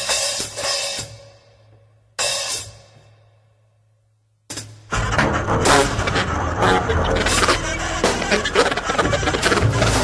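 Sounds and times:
drum and cymbal hits: 0:00.0 - 0:01.4, 0:04.5 - 0:10.0
double basses: 0:04.9 - 0:10.0
baritone saxophone: 0:05.0 - 0:10.0.

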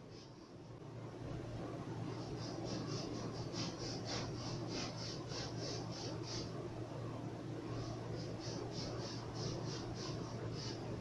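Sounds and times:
knife sawing through foam: 0:02.2 - 0:06.5.

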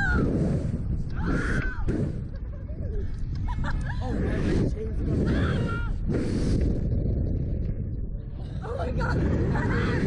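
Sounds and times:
wind rumble: 0:00.0 - 0:10.0
people laughing and squealing: 0:01.2 - 0:05.8, 0:08.6 - 0:10.0.

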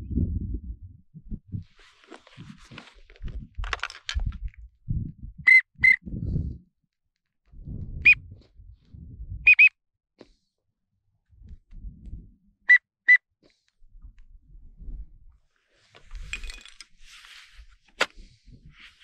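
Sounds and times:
rustling and handling noise: 0:01.5 - 0:04.7, 0:15.6 - 0:19.0
duck whistle call notes: 0:09.5 - 0:09.7.

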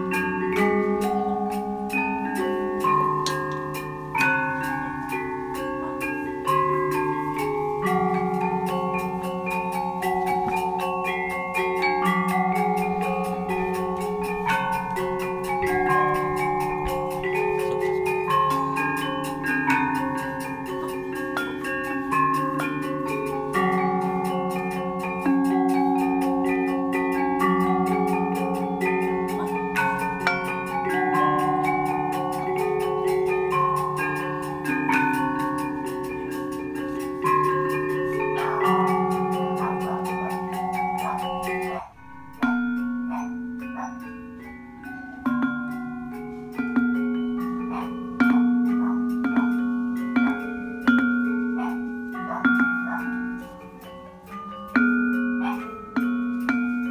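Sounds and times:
gamelan metallic notes: 0:00.0 - 0:56.9.

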